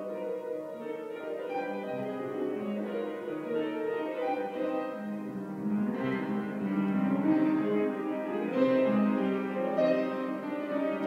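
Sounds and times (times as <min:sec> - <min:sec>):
slow piano chords: 0:00.0 - 0:11.0.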